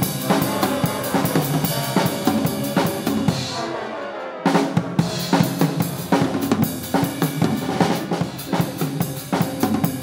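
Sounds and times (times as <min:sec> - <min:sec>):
drum kit played with sticks: 0:00.0 - 0:10.0.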